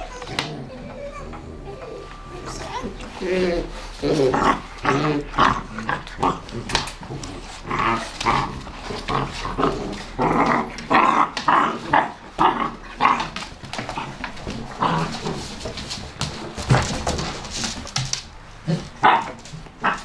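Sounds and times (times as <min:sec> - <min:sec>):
puppies growling and yapping: 0:00.0 - 0:20.0.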